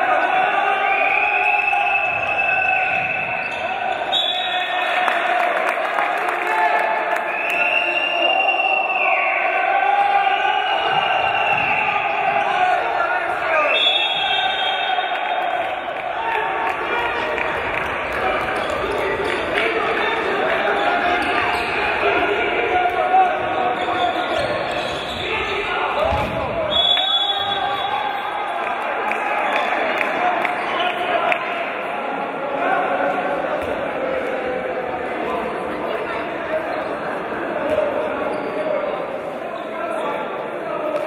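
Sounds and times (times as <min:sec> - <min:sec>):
voices across a hall: 0:00.0 - 0:41.0.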